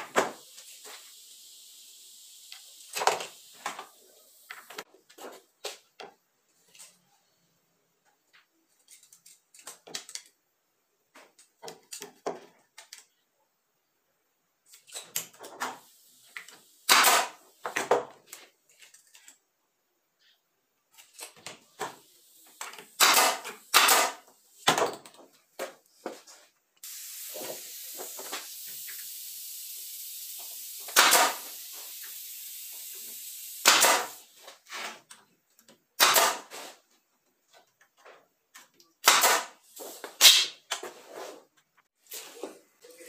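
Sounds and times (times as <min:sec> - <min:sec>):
air blow gun hissing: 0:00.0 - 0:04.8, 0:15.7 - 0:17.8, 0:21.9 - 0:24.3, 0:26.8 - 0:34.5
short loud bursts: 0:26.8 - 0:32.5.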